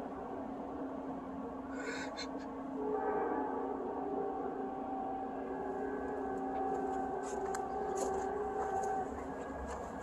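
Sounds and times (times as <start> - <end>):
train horn chord: 2.7 - 10.0.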